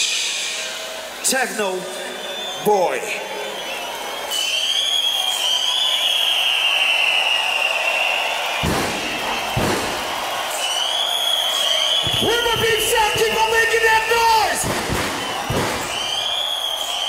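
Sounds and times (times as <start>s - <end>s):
dense crowd noise: 0.0s - 17.0s
heavy booms: 8.6s - 10.5s, 12.0s - 16.4s.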